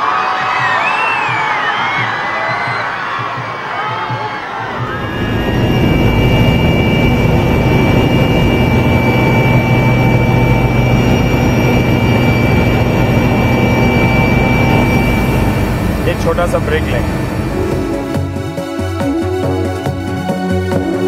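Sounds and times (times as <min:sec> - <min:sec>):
high turbine whine: 0:04.5 - 0:20.2
helicopter rotor drone: 0:04.5 - 0:21.0.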